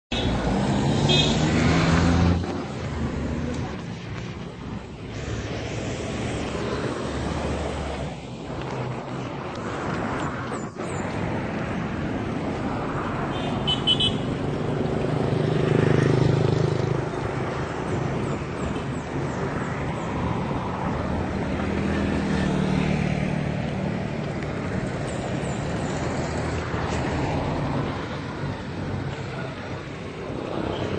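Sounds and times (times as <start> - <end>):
road traffic passing: 0.1 - 30.9.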